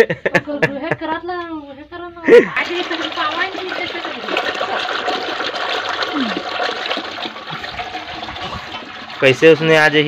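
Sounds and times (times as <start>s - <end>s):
curd sloshing in a metal pot: 2.6s - 10.0s.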